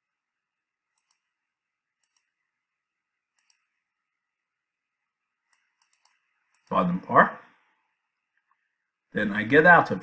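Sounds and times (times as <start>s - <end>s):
computer mouse button clicking: 2.0s - 2.3s, 3.3s - 3.7s, 5.5s - 6.8s.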